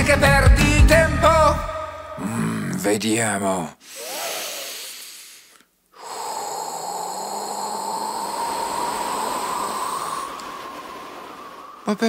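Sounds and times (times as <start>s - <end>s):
cartoon voice drawing breath: 3.8s - 10.5s
cartoon voice blowing hard: 3.9s - 5.1s.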